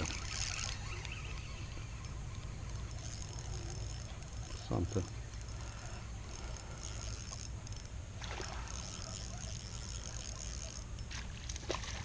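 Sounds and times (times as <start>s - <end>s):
fishing reel being cranked: 0.0s - 11.7s.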